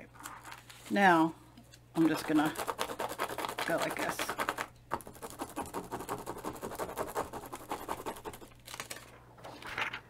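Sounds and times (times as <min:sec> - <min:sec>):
hand rubbing plastic stencil: 0:02.0 - 0:08.5.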